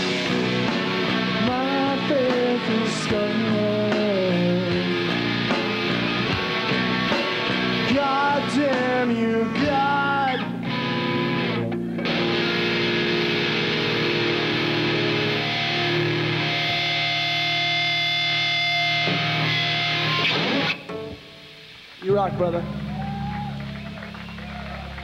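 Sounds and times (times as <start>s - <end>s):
rock band with distorted guitars: 0.0s - 25.0s.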